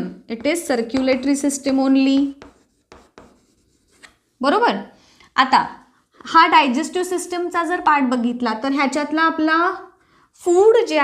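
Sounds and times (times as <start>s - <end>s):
person speaking: 0.0s - 9.9s
chalk writing on chalkboard: 0.3s - 4.3s.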